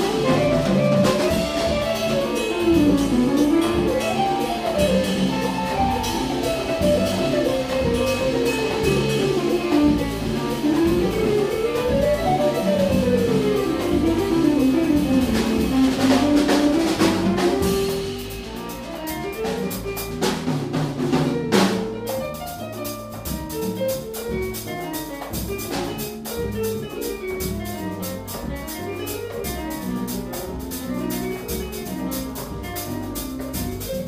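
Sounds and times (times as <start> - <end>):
melodic line in quick phrases: 0.0 - 20.5, 21.6 - 34.0
drum and cymbal hits: 0.0 - 34.0
latin jazz band playing: 0.0 - 34.0
loud drum accent: 0.0 - 34.0.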